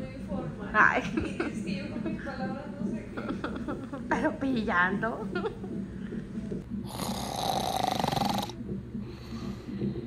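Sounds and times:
person snoring: 6.8s - 8.6s.

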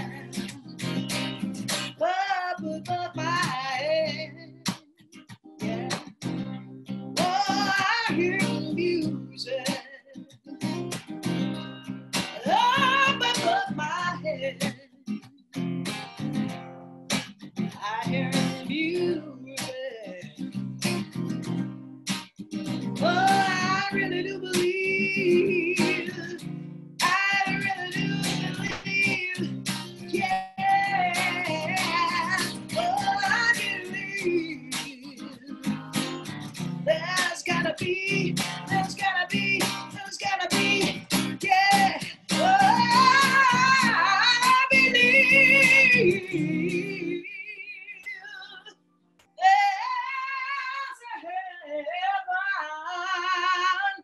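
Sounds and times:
woman singing wordless melody: 0.0s - 0.7s, 1.9s - 4.7s, 5.6s - 6.1s, 7.1s - 10.8s, 12.3s - 15.0s, 17.7s - 20.5s, 23.0s - 35.9s, 36.8s - 54.0s
acoustic guitar strumming: 0.0s - 48.2s.

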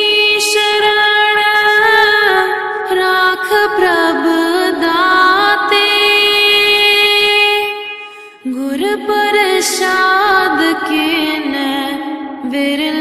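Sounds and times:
person singing devotional song: 0.0s - 13.0s.

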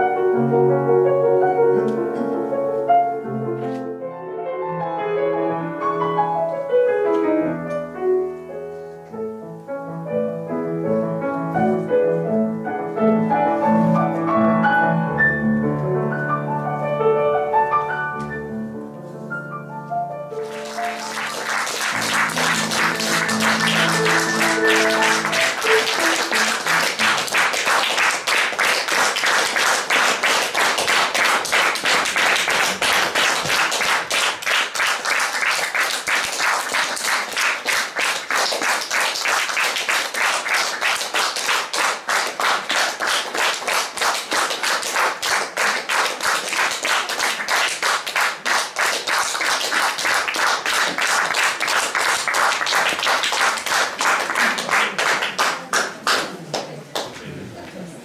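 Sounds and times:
audience applauding: 20.3s - 57.2s.

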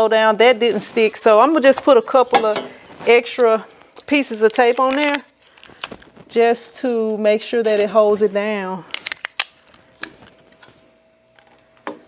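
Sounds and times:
tape rustle: 0.5s - 6.5s, 7.6s - 10.8s.

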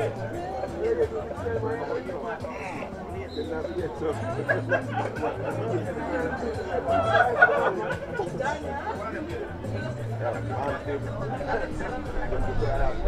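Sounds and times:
background music with bass line: 0.0s - 13.0s
chatter of voices: 0.0s - 13.0s.

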